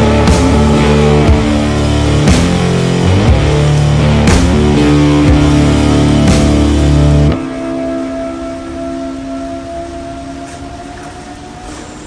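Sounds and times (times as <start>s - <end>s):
rock music chord ringing: 0.0s - 10.6s.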